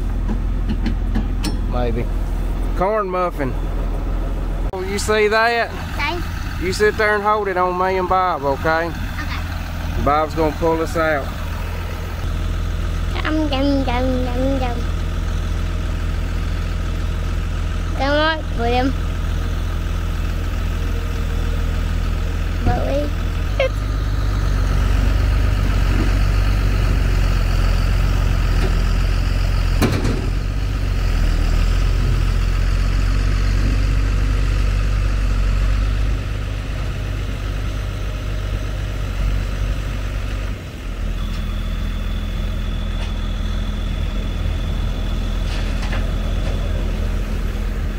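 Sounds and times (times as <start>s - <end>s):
engines running under load: 0.0s - 47.9s.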